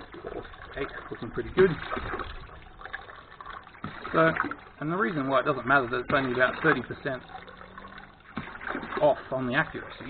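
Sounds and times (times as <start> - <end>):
diaphragm pump: 0.0 - 10.0
water trickling into bucket: 0.0 - 10.0.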